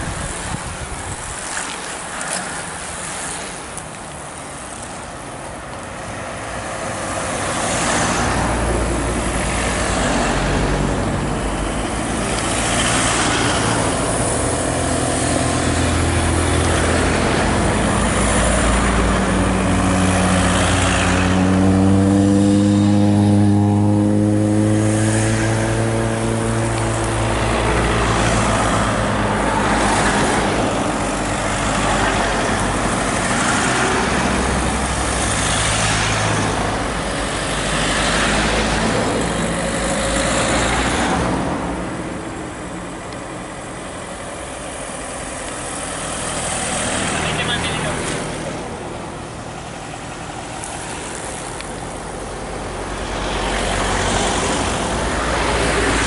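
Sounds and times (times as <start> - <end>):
cars driving past: 0.0 - 56.0.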